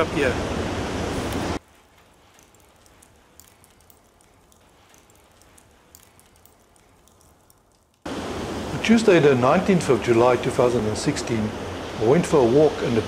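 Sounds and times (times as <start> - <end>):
fire crackling: 1.0 - 9.2.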